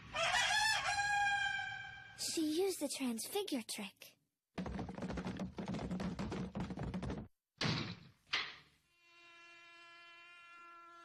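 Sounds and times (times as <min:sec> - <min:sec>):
rooster crowing: 0:00.0 - 0:02.1.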